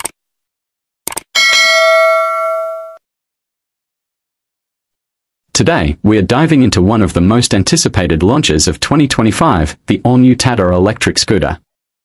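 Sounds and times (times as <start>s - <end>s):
notification bell ding: 1.4s - 3.0s.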